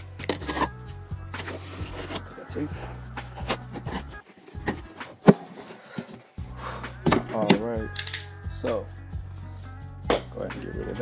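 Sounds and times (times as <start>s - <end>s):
background music: 0.0s - 11.0s
box cutter slitting cardboard: 0.2s - 0.7s, 3.3s - 6.2s
cardboard knocks and scrapes: 3.3s - 6.3s.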